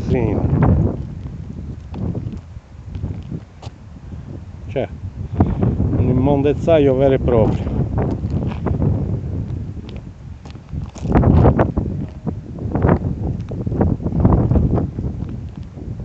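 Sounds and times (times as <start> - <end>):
footsteps scuffing: 0.0 - 3.8, 7.4 - 8.9, 9.5 - 12.3
wind rumble on microphone: 0.0 - 16.0.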